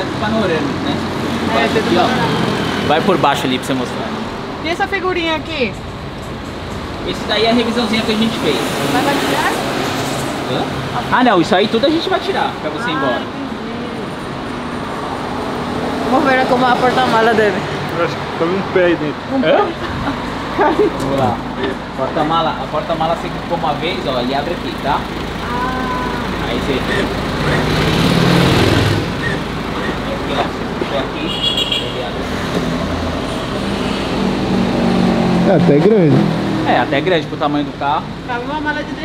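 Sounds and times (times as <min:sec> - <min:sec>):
motor vehicle noise: 0:00.0 - 0:39.0.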